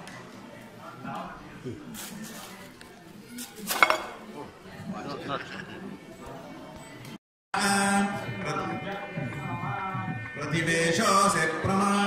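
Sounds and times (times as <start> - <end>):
murmuring voices: 0.4 - 12.0
metal dishware clinking: 3.7 - 4.2.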